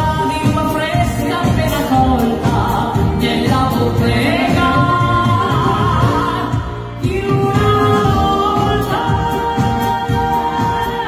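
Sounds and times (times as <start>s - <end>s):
dance band playing: 0.0s - 11.0s
woman singing into a microphone: 0.0s - 11.0s.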